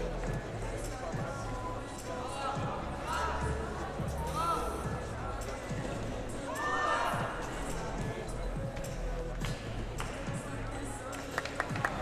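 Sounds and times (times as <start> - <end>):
voices in a large hall: 0.0 - 12.0.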